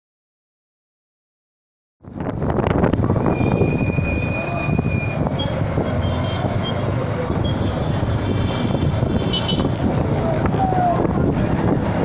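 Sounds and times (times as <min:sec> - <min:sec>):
road noise: 0:02.0 - 0:12.0
thin high whistle: 0:03.2 - 0:05.2
motorcycle engine: 0:05.3 - 0:12.0.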